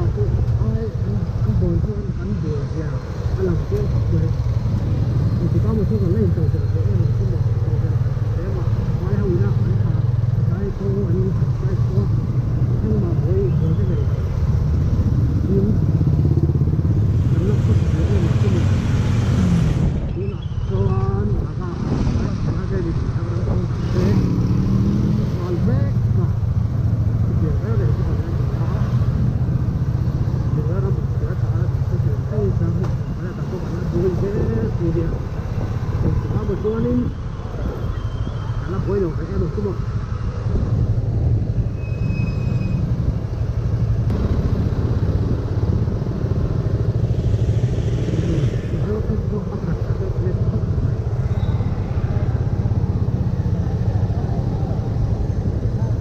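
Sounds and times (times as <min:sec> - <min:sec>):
motorcycle engine at low speed: 0:00.0 - 0:38.0, 0:38.6 - 0:56.0
muffled voices: 0:48.0 - 0:52.8.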